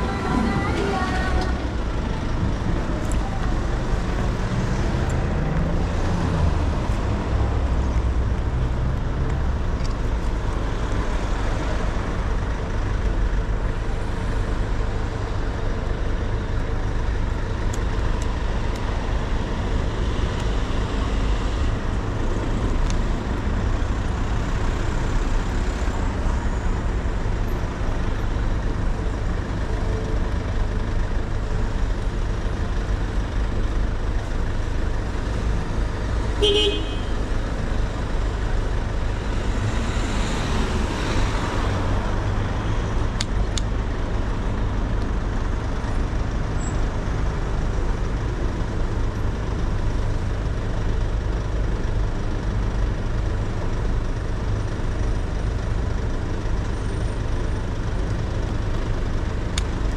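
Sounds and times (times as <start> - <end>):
cars passing and idling: 0.0 - 59.9.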